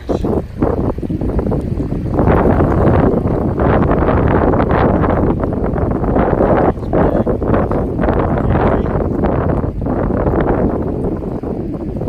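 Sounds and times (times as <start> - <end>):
rushing river water: 0.0 - 12.0
wind buffeting microphone: 0.0 - 12.0.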